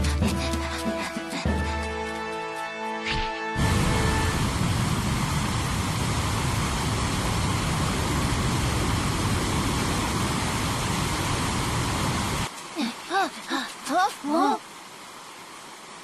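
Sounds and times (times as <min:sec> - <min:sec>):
waterfall rushing: 0:03.6 - 0:16.0.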